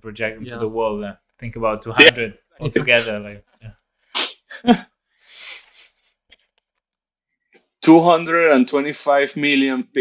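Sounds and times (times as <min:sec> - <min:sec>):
man laughing: 0:02.6 - 0:03.1
man saying yeah: 0:02.6 - 0:03.2
hissing exhale: 0:05.2 - 0:06.0.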